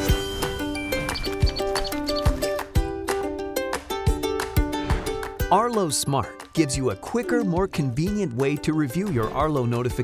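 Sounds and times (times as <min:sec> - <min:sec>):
upbeat background music: 0:00.0 - 0:10.0.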